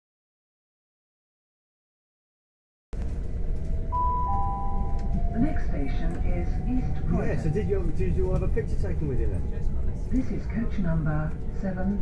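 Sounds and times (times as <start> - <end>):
train carriage rumble: 3.0 - 12.0
two-tone public address chime: 3.9 - 6.2.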